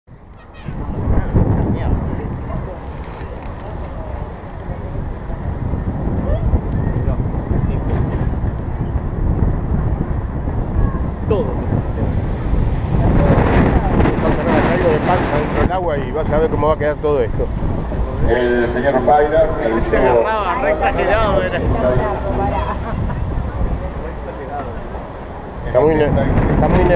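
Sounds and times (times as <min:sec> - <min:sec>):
wind buffeting microphone: 0:00.1 - 0:26.9
indistinct voices: 0:00.2 - 0:26.9.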